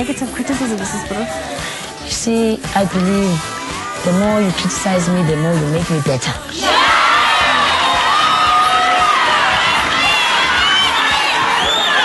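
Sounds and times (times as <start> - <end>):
audience cheering and screaming: 6.6 - 12.0.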